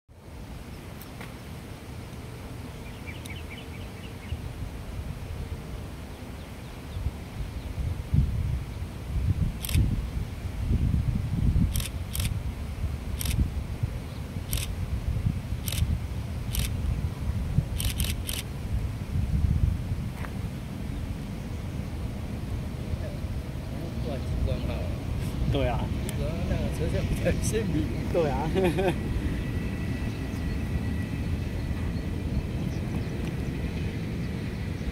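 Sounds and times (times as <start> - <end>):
sharp clicks: 11.7 - 12.4
distant train rumbling: 20.7 - 34.9.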